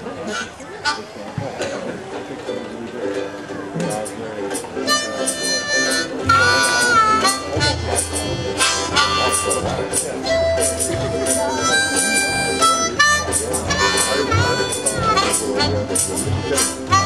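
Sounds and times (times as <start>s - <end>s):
acoustic string band: 0.0s - 17.0s
high wind instrument melody: 4.0s - 17.0s
bass line: 4.9s - 17.0s.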